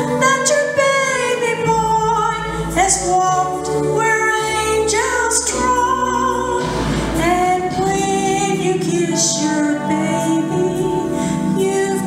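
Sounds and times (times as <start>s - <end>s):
instrumental accompaniment: 0.0s - 12.0s
woman singing into microphone: 0.0s - 12.0s.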